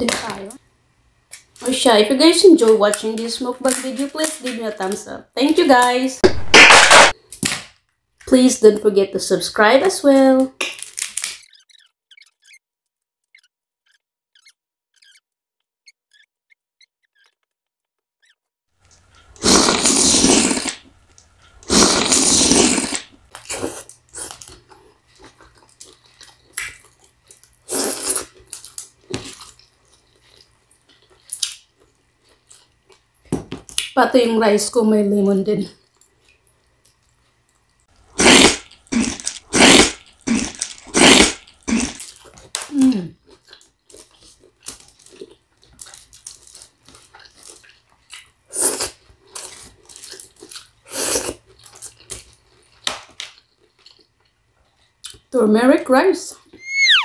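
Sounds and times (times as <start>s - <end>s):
loud slurps: 19.2s - 20.9s, 21.6s - 24.4s, 38.2s - 42.0s
wet eating clicks and smacks: 23.3s - 27.6s
smacking chewing: 43.2s - 55.3s.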